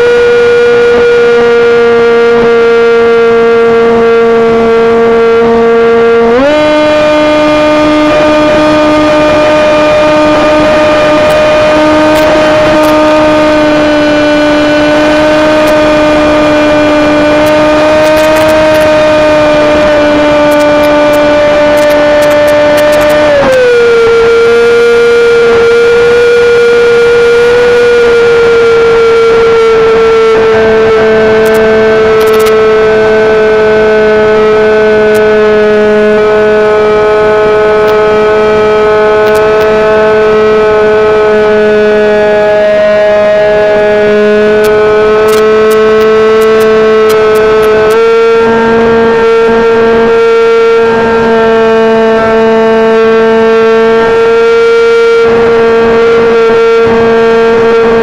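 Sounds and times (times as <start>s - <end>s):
model airplane motor droning: 0.0s - 42.5s, 43.1s - 58.0s.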